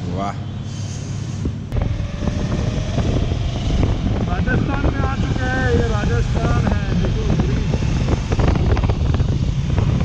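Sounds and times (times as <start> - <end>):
wind rushing over microphone: 1.4 - 10.0
tyres on road: 1.5 - 10.0
motorcycle engine droning: 1.7 - 10.0.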